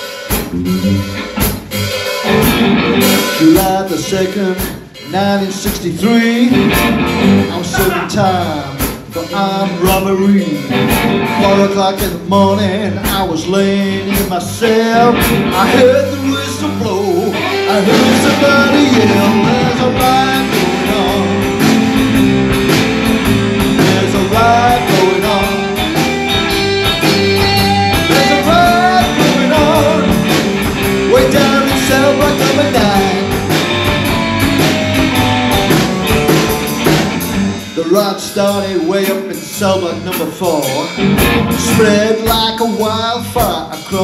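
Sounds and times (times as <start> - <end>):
drums: 0.0 - 44.0
electric guitar bending notes: 0.3 - 5.6, 6.3 - 37.8, 39.7 - 42.5
walking bass line: 0.3 - 44.0.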